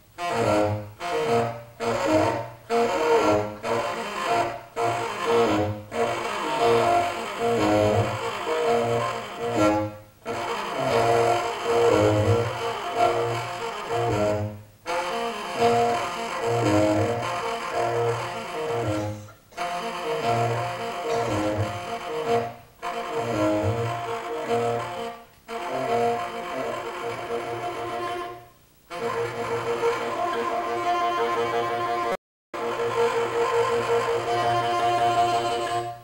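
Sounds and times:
tenor saxophone melody: 0:00.0 - 0:36.0
double bass: 0:00.1 - 0:36.0.

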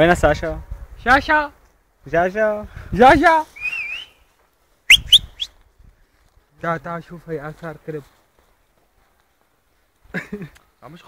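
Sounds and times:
person whistling: 0:03.6 - 0:04.2, 0:04.9 - 0:05.6.

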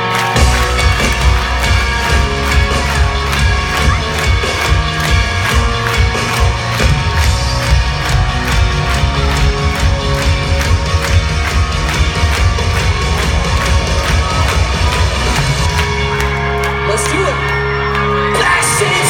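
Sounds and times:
pop-punk band playing live: 0:00.0 - 0:19.0
fast steady drum beat: 0:00.4 - 0:16.0.

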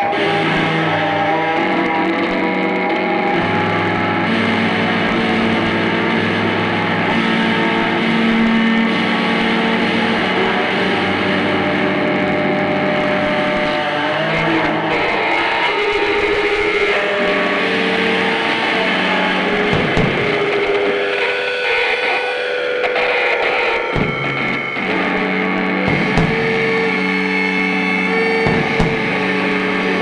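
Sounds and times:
electric guitar droning: 0:00.0 - 0:30.0
drum hits: 0:19.6 - 0:20.8, 0:23.9 - 0:24.8, 0:25.8 - 0:27.0, 0:28.4 - 0:29.3.

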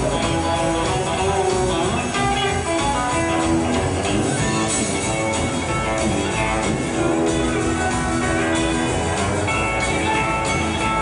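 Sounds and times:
acoustic guitar: 0:00.0 - 0:11.0
bass guitar: 0:00.0 - 0:11.0
drums: 0:00.0 - 0:11.0
electric guitar: 0:00.0 - 0:11.0.

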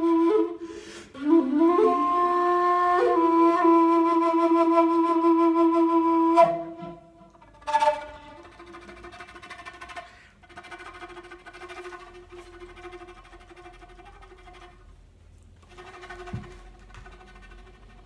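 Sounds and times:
wooden flute notes: 0:00.0 - 0:15.0, 0:15.6 - 0:18.0.

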